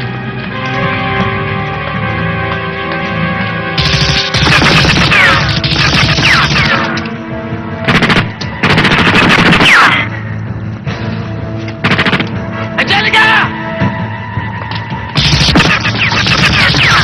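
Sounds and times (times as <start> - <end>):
background music sustained tones: 0.0 - 16.2
automatic gunfire bursts: 3.8 - 6.9, 7.9 - 9.9, 15.2 - 17.0.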